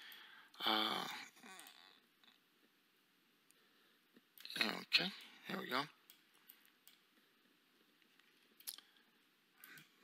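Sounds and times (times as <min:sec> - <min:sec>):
person saying uh: 0:00.6 - 0:01.8.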